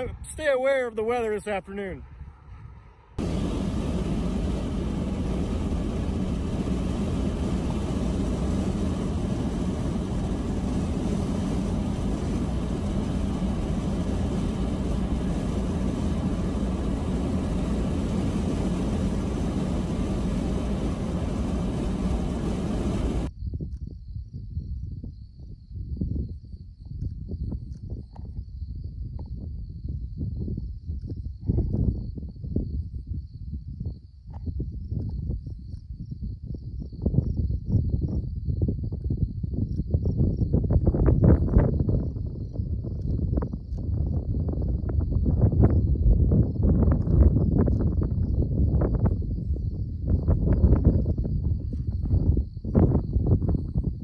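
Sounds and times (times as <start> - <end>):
wind gusts on microphone: 0.0 - 54.0
car road and wind noise: 1.2 - 23.8, 25.8 - 54.0
crickets chirring: 3.4 - 54.0.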